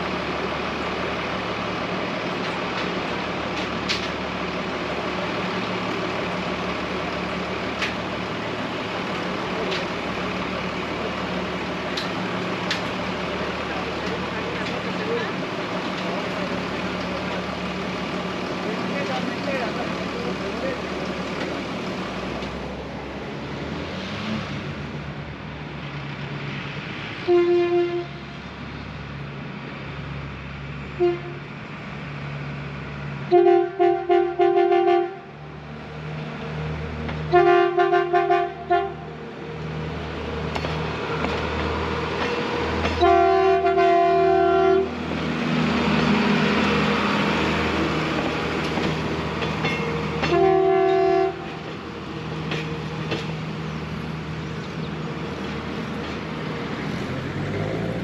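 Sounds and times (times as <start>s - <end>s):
diesel engine running: 0.0s - 24.0s
rumble of train passing: 0.0s - 58.0s
train horn blasts and toots: 27.2s - 28.3s, 31.0s - 31.4s, 33.3s - 35.3s, 37.3s - 39.1s, 43.0s - 44.9s, 50.2s - 51.6s.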